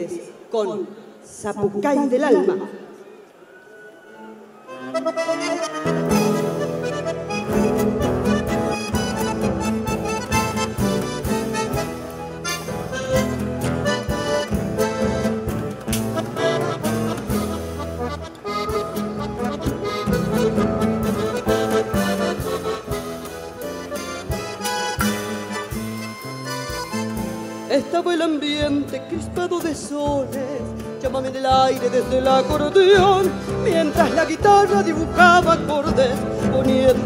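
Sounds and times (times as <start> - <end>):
guitar: 3.7 - 37.0
accordion melody: 4.1 - 37.0.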